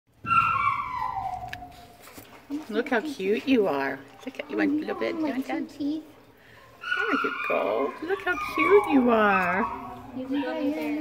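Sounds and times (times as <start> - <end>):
small dog whining: 0.2 - 2.0, 6.8 - 10.9.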